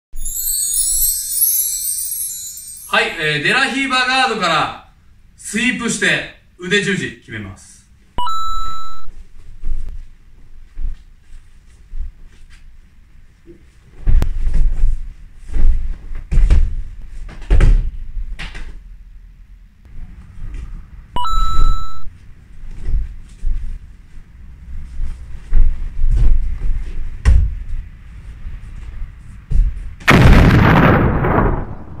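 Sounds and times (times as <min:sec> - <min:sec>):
two-tone electronic beep: 0:08.2 - 0:09.1, 0:21.2 - 0:22.1
loud explosion boom: 0:30.1 - 0:32.0.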